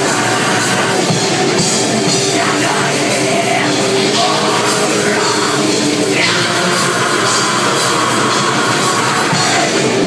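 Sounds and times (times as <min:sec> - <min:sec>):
distorted electric guitars: 0:00.0 - 0:10.0
drum kit: 0:00.0 - 0:10.0.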